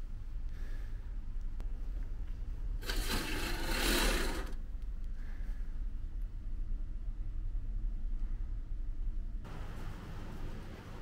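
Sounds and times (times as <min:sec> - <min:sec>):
curtain sliding along rail: 0:02.8 - 0:04.6.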